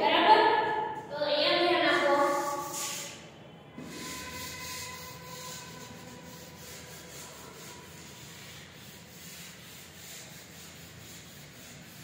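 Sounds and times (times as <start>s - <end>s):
duster rubbing on chalkboard: 1.8s - 3.2s, 3.8s - 12.0s.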